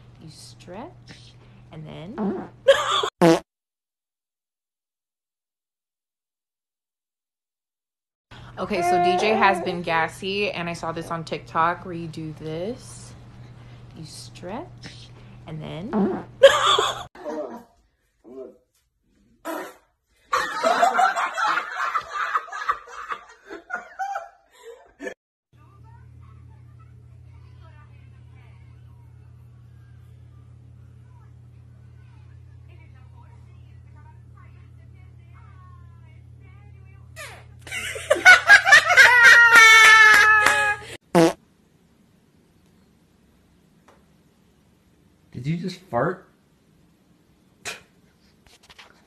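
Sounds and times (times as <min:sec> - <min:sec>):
long squeaky fart: 0:02.0 - 0:03.5, 0:15.8 - 0:16.4, 0:41.1 - 0:41.4.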